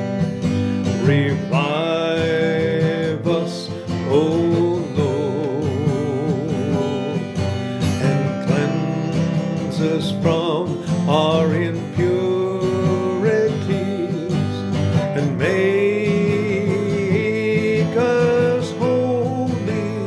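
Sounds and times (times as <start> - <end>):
strummed acoustic guitar: 0.0 - 20.0
man singing with vibrato: 0.8 - 20.0.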